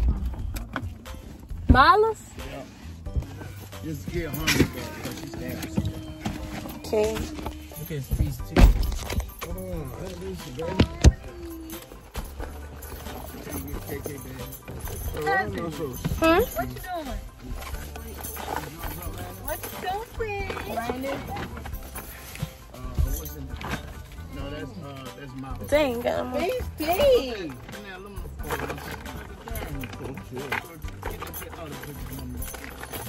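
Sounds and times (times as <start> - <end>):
background music with low bass: 0.0 - 33.0
people talking in a car: 0.0 - 33.0.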